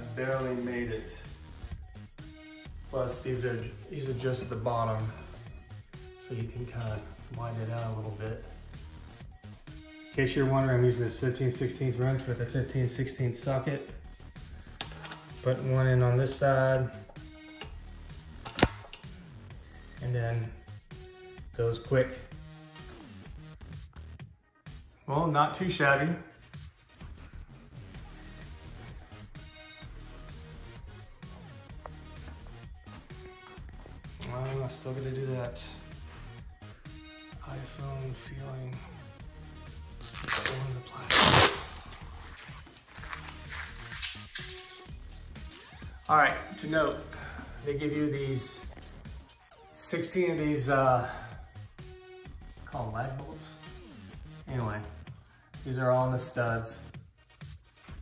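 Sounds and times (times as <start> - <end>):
background music: 0.0 - 58.0
plastic film crackling: 40.0 - 44.8
plastic film ripping off: 40.0 - 44.8.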